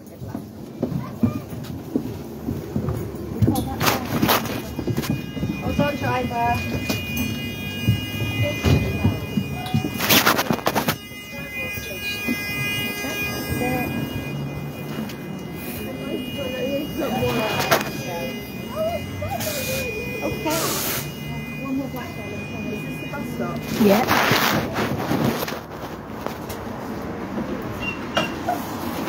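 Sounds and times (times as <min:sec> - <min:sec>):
people talking: 0:00.0 - 0:25.5.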